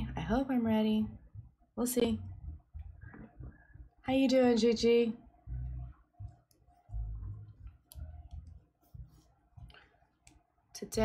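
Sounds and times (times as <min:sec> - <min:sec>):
knitting needles clicking: 0:07.3 - 0:08.6.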